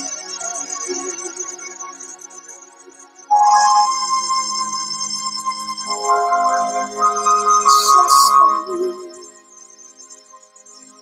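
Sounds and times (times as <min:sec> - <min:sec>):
electronic keyboard sustained chord: 0:03.3 - 0:09.6.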